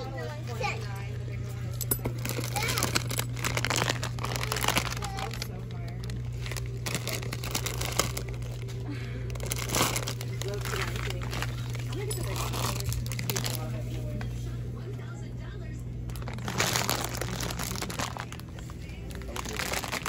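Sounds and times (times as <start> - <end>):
steady low hum: 0.0 - 20.0
plastic packets crinkling: 1.9 - 14.3, 16.0 - 20.0.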